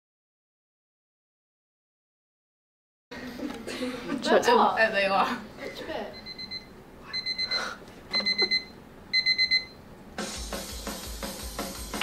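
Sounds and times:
high-pitched alarm beeps: 6.1s - 9.8s.

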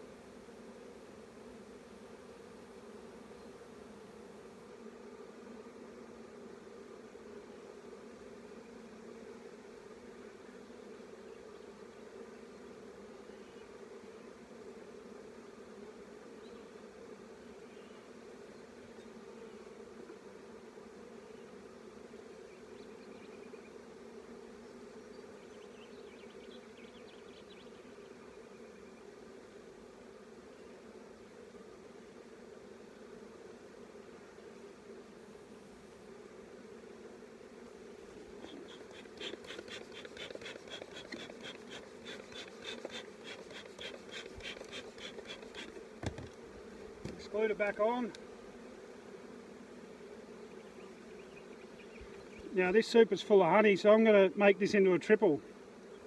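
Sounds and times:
bees humming: 0.0s - 56.0s.

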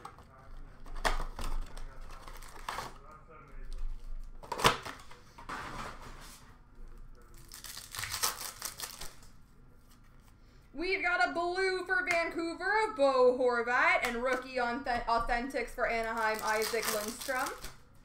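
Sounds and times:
packaging crinkling and tearing: 0.0s - 5.1s, 7.0s - 9.3s, 16.0s - 17.9s
rustling packaging: 0.0s - 10.2s, 15.9s - 18.0s.

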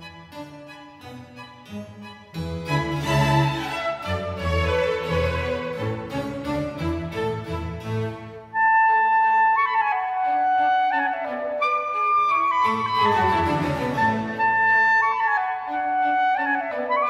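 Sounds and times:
string orchestra playing: 0.0s - 17.0s.

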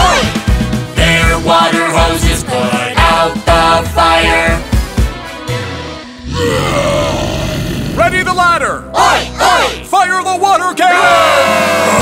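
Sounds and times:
background music: 0.0s - 12.0s
cartoon dinosaur roar: 6.2s - 8.4s, 11.2s - 12.0s.

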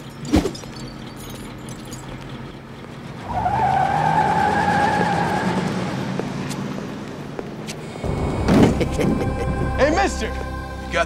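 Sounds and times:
car tyres squealing: 0.0s - 9.7s
low car noise: 0.0s - 11.0s.

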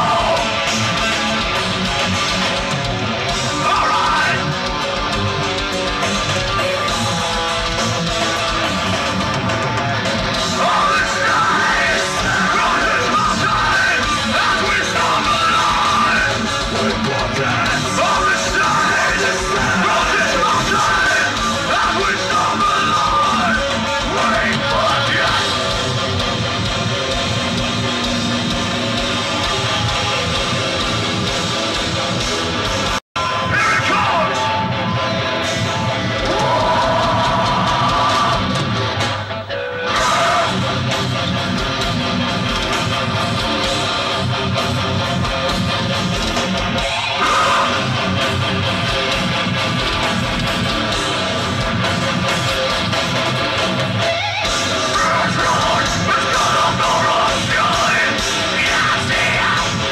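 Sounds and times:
shouted vocals: 0.0s - 1.0s, 3.4s - 4.7s, 10.4s - 25.8s, 33.2s - 34.7s, 36.0s - 38.7s, 39.8s - 40.9s, 46.7s - 48.5s, 54.1s - 59.9s
distorted electric guitars: 0.0s - 59.9s.

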